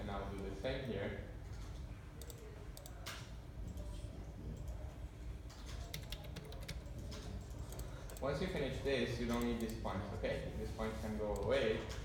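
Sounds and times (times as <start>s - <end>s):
computer keys clicking: 1.5s - 3.9s, 5.5s - 8.3s, 9.3s - 9.8s.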